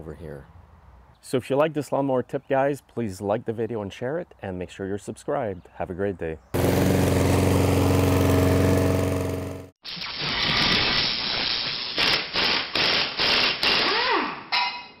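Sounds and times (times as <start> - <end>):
lawn mower engine running: 6.6 - 9.8.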